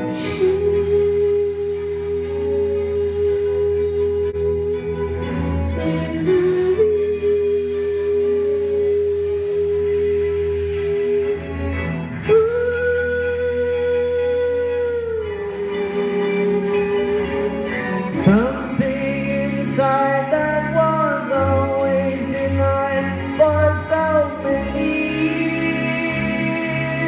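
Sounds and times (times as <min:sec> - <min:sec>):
string section playing: 0:00.0 - 0:27.0.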